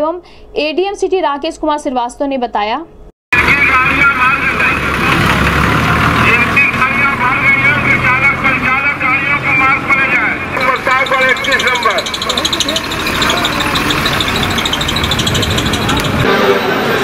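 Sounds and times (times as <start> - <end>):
bus engines idling: 3.4 - 17.0
chatter of many people: 10.1 - 17.0.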